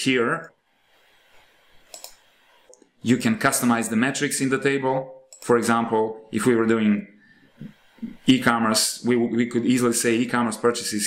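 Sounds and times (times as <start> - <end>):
computer mouse clicks: 1.8 - 2.9, 5.3 - 5.6.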